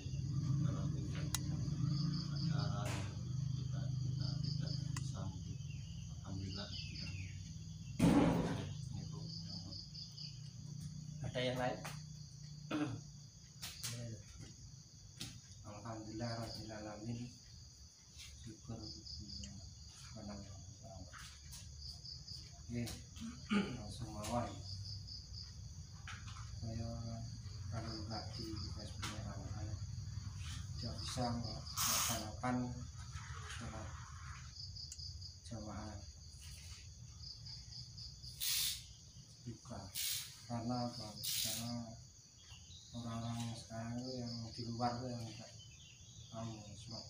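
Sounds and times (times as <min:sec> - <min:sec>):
cricket chirping: 0:00.0 - 0:47.0
high insect trill: 0:00.0 - 0:47.0
short loud hiss: 0:31.8 - 0:32.3, 0:38.4 - 0:38.9, 0:39.9 - 0:40.5, 0:41.2 - 0:41.7.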